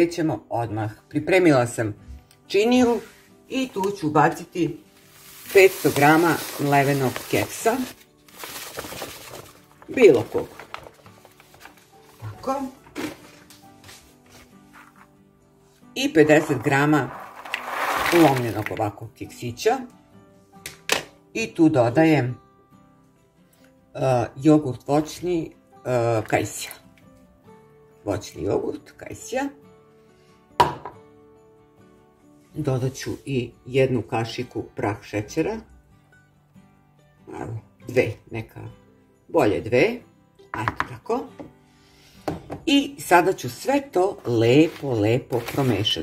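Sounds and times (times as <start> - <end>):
soft background music: 0.0 - 46.0
crumbs pouring into a bowl: 5.0 - 9.6, 16.3 - 18.8.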